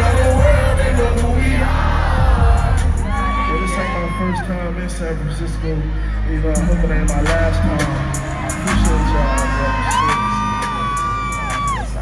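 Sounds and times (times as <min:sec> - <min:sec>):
crowd: 0:00.0 - 0:12.0
live concert music with heavy bass: 0:00.0 - 0:12.0.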